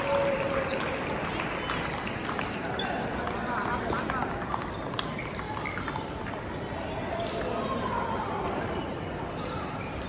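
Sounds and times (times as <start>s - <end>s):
din of many voices: 0.0s - 10.0s
table tennis balls clicking: 1.6s - 7.8s.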